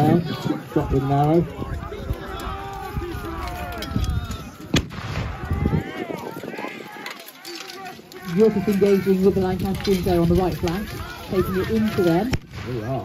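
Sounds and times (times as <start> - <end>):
people shouting: 0.0 - 13.0
clatter of weapons and armour: 1.9 - 4.7, 5.7 - 12.4
sharp crack: 4.4 - 8.8.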